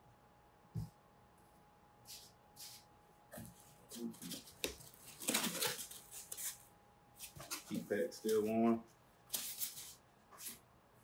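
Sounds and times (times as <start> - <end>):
packing rustling: 4.2 - 6.5.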